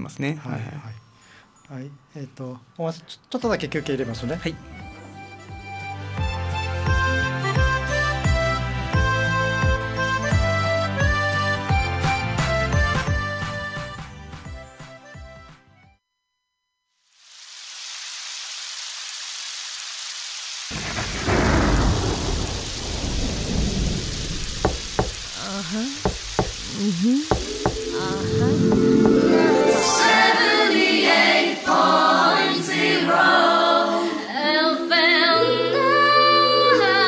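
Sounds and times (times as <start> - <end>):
music: 0.0 - 16.1, 27.6 - 37.0
rain hiss: 17.0 - 32.4
thunder rumble: 20.7 - 25.5
person singing: 26.7 - 37.0.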